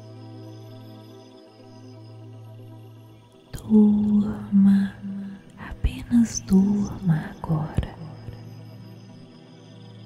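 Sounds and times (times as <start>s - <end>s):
ambient music drone: 0.0s - 10.0s
woman speaking: 3.6s - 8.4s.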